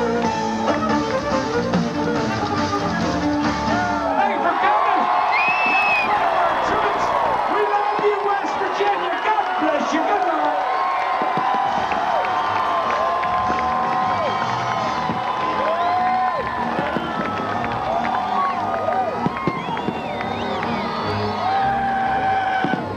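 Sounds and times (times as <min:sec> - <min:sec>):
crowd cheering and whooping: 0:00.0 - 0:01.4, 0:03.4 - 0:22.9.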